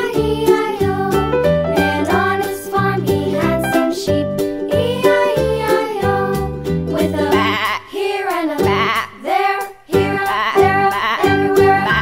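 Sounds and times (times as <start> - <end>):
children's song backing music: 0.0 - 12.0.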